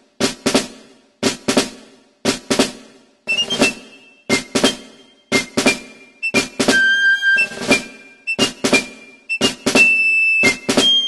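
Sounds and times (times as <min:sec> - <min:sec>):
drum beat of sharp hits: 0:00.0 - 0:11.0.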